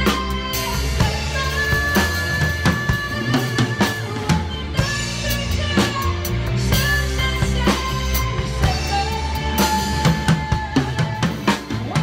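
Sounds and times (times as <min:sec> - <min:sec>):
acoustic drum kit playing: 0:00.0 - 0:12.0
backing track music: 0:00.0 - 0:12.0.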